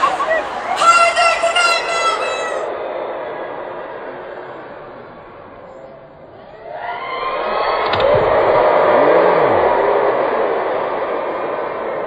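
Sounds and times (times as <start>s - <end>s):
concert crowd screaming: 0.0s - 5.6s, 6.3s - 12.0s.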